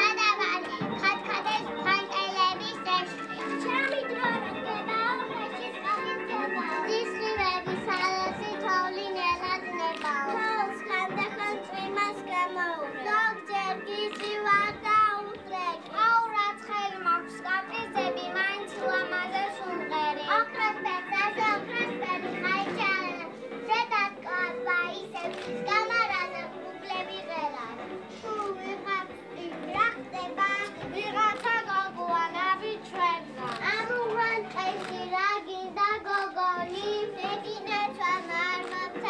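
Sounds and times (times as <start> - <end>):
background music: 0.0 - 39.0
young children's voices: 0.0 - 39.0.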